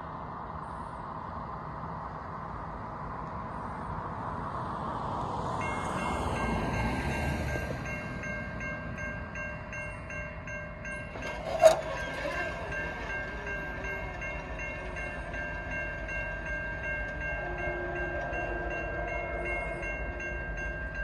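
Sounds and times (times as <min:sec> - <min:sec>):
railroad crossing bell ringing: 0:05.3 - 0:21.0.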